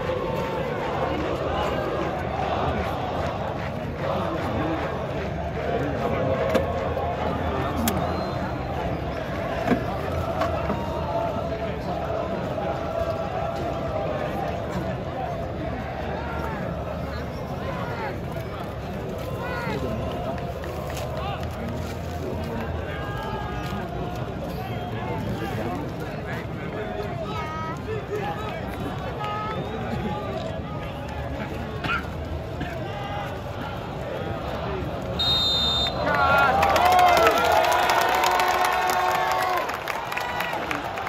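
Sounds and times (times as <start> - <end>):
stadium crowd din: 0.0 - 41.0.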